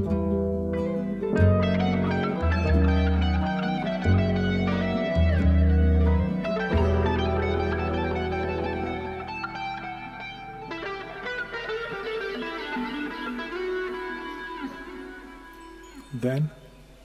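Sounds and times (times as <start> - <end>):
ringing higher notes: 1.4 - 17.0.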